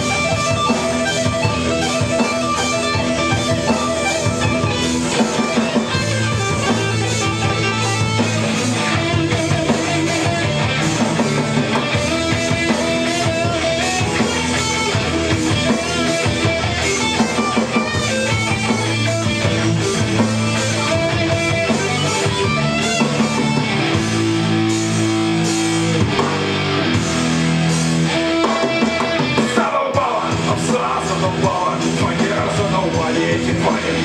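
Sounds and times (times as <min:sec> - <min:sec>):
electric guitar: 0:00.0 - 0:34.0
rock band playing: 0:00.0 - 0:34.0.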